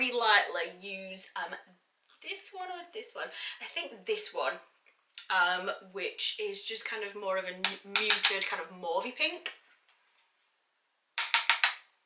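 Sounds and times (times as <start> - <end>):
brush tapping plastic palette: 7.6 - 8.6, 11.2 - 11.9.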